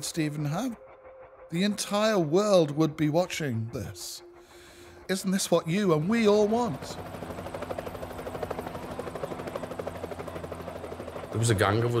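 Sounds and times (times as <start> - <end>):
helicopter engine hum: 0.0 - 12.0
helicopter rotor beating: 0.0 - 12.0.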